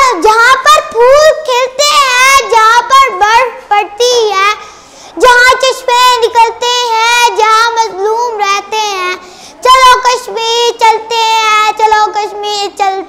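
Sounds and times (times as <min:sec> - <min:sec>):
boy singing: 0:05.2 - 0:09.0, 0:09.6 - 0:13.0.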